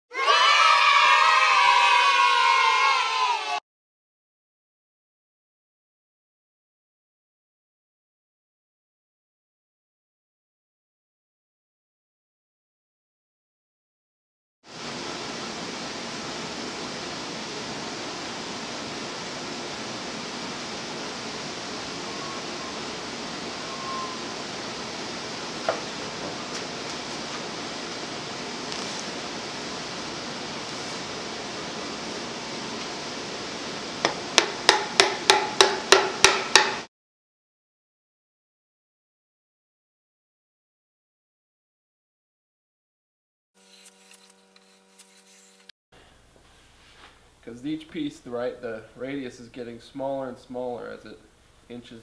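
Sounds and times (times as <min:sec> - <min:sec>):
long yelled cry: 0:00.1 - 0:03.6.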